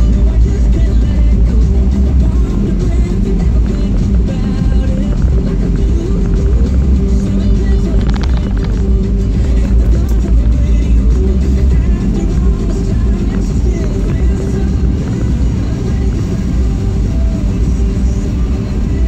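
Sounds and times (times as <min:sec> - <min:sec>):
car engine and tyres rumbling: 0:00.0 - 0:19.0
music on car radio: 0:00.0 - 0:19.0.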